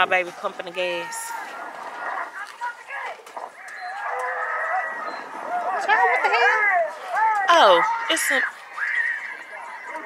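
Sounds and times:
voices hollering from screen: 0:00.6 - 0:10.0.

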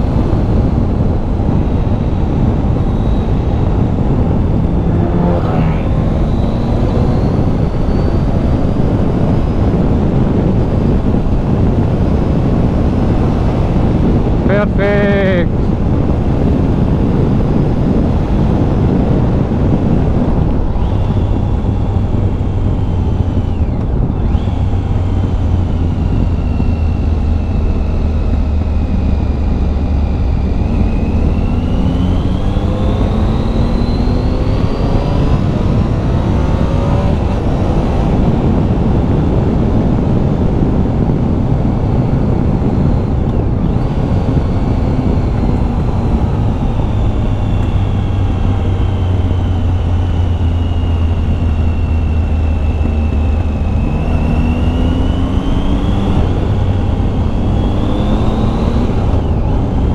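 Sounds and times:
steady low rush: 0:00.0 - 0:08.7
motorcycle engine revving: 0:00.0 - 0:59.9.

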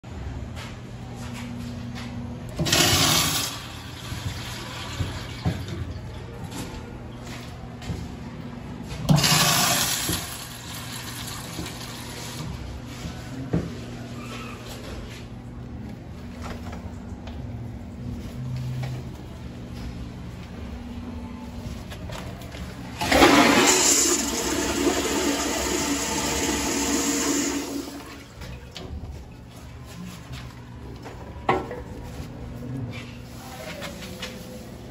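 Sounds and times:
urinal flushing water rush: 0:02.6 - 0:05.7, 0:09.1 - 0:12.5, 0:22.9 - 0:28.8.

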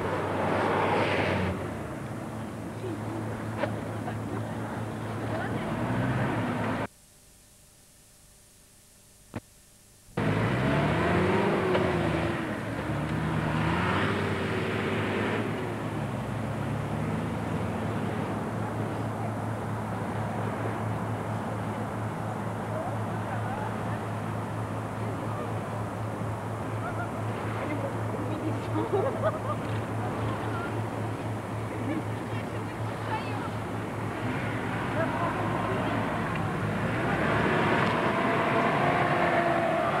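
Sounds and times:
car engine revving: 0:10.2 - 0:32.0, 0:32.9 - 0:40.0.

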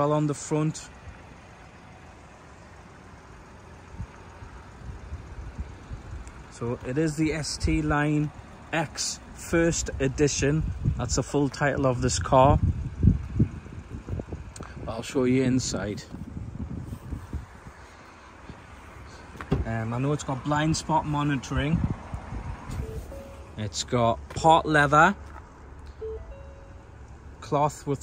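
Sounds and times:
outdoor background noise: 0:00.0 - 0:28.0
faint short tones: 0:22.7 - 0:23.6, 0:25.9 - 0:27.0.

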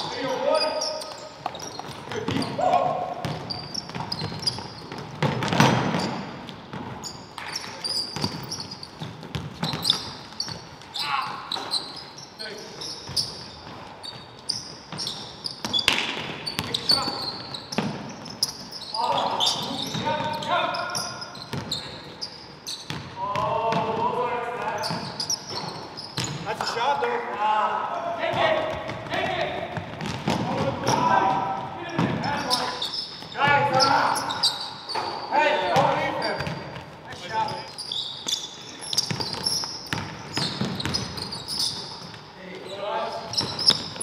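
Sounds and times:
sneaker squeaks: 0:00.0 - 0:27.4, 0:28.2 - 0:44.0
basketball bouncing on hardwood: 0:03.2 - 0:07.0, 0:08.2 - 0:10.6, 0:21.5 - 0:21.8, 0:28.3 - 0:32.3, 0:38.9 - 0:41.2
players calling out: 0:14.5 - 0:22.4.

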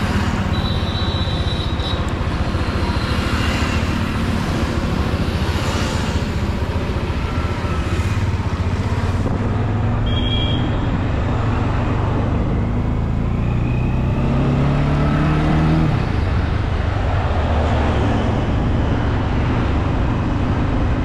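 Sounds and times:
wind and road noise: 0:00.0 - 0:21.0.

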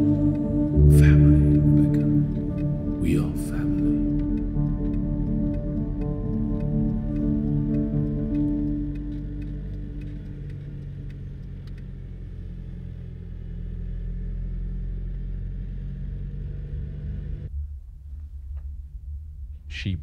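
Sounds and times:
car rumble from inside cabin: 0:00.0 - 0:17.5.

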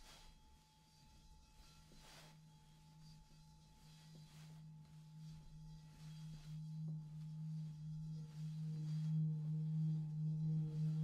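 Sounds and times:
singing bowl humming: 0:00.1 - 0:11.0.

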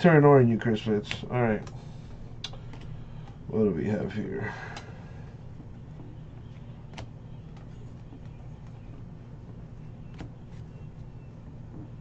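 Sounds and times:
steady low hum: 0:00.0 - 0:12.0
cards flipped through by hand: 0:02.4 - 0:03.4, 0:06.4 - 0:11.0.

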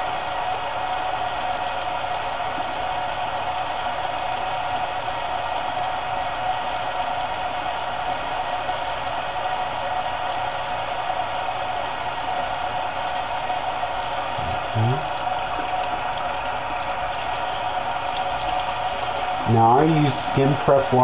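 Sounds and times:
tap water running into sink: 0:12.4 - 0:21.0.

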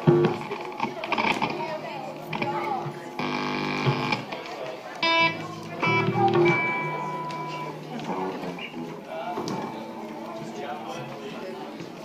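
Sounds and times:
audience chatter: 0:00.0 - 0:12.0
amplified guitar note: 0:05.0 - 0:10.4.

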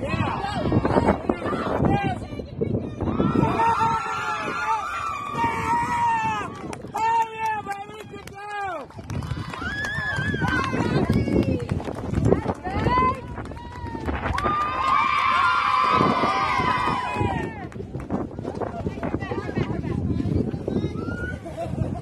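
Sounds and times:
players shouting and cheering: 0:00.0 - 0:11.6, 0:12.6 - 0:17.7.

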